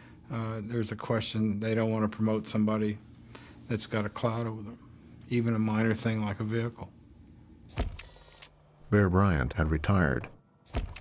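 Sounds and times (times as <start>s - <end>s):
click and mechanical whir: 7.7s - 8.6s, 10.7s - 11.0s.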